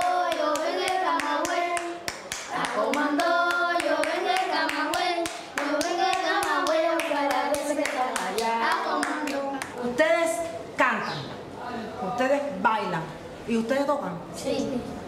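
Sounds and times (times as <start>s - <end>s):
children singing: 0.0s - 9.6s
hands clapping in rhythm: 0.0s - 9.8s.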